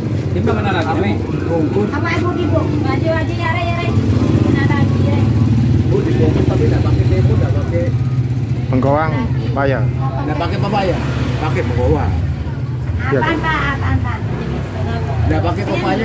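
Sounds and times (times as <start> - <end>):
people talking indistinctly: 0.0 - 16.0
traffic rumble: 0.0 - 16.0.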